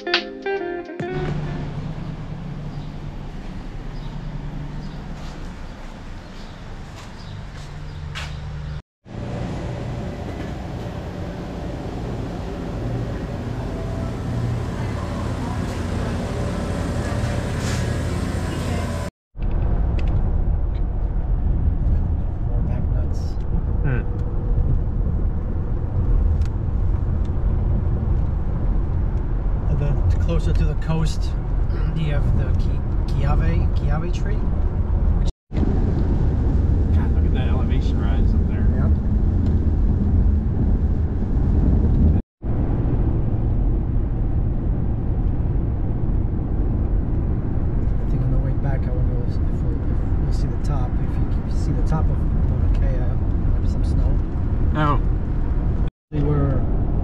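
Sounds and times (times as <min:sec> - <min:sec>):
grocery store hum: 0:09.1 - 0:19.1
wind on microphone: 0:34.4 - 0:48.2.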